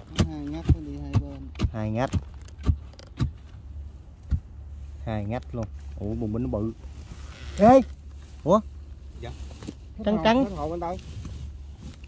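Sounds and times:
digging tool striking earth: 0.0s - 4.6s
low steady hum: 0.0s - 12.0s.

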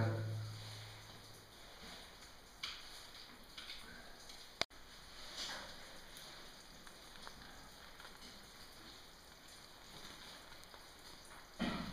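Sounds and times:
faint steady hiss: 0.0s - 11.9s.

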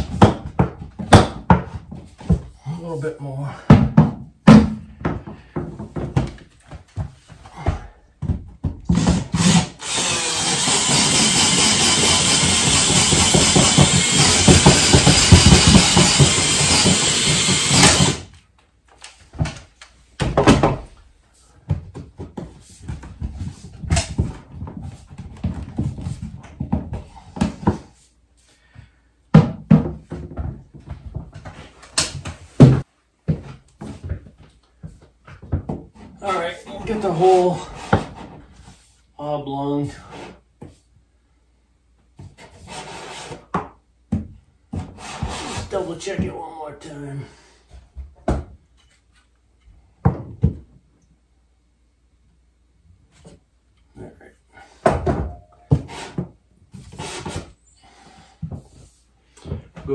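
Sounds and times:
power drill running: 9.4s - 18.3s.

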